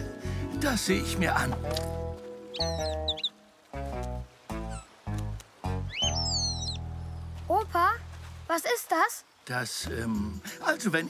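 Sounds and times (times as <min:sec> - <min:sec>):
playful cartoon music: 0:00.0 - 0:06.9
cartoon bird chirpy call: 0:05.9 - 0:06.8.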